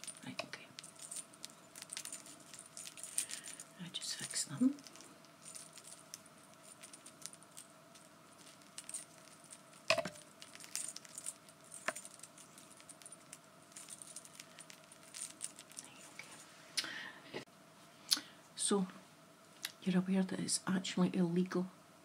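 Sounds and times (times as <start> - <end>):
metal cuffs clinking: 0.0 - 16.1.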